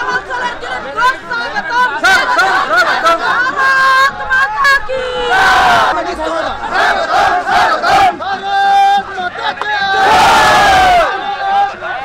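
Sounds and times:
crowd shouting slogans: 0.0s - 12.0s.

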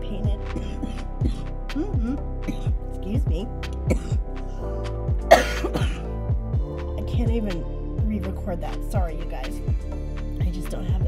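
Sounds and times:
background music with steady beat: 0.0s - 11.0s
woman coughing: 0.6s - 2.8s, 3.9s - 4.2s, 5.3s - 6.2s.

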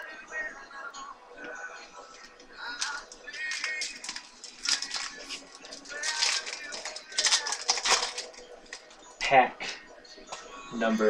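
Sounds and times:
card wrapper crinkling and rustling: 2.6s - 8.9s.

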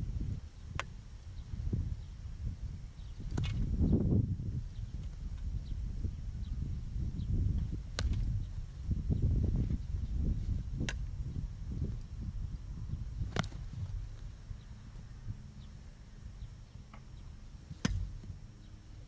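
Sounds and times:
wind rumble on microphone: 0.0s - 19.0s
ball being struck: 8.0s - 8.3s, 17.8s - 18.2s.

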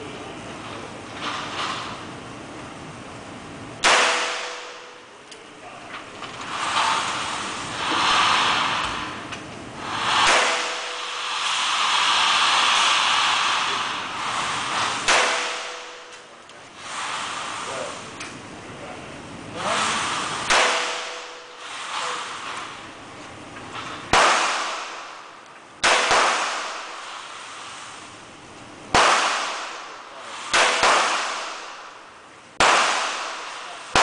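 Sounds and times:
handgun shots: 3.8s - 5.0s, 15.0s - 16.2s, 20.5s - 21.4s, 24.1s - 24.9s, 25.8s - 26.8s, 29.0s - 29.8s, 30.5s - 31.6s, 32.6s - 34.0s.

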